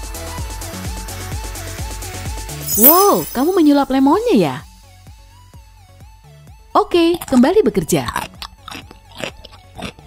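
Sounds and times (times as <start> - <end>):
crunchy chewing of bread: 8.0 - 10.0.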